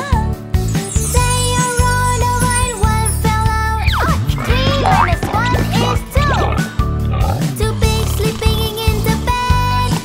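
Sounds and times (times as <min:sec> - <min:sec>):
children's song backing music: 0:00.0 - 0:10.0
sliding-pitch cartoon sound effects: 0:03.8 - 0:06.7.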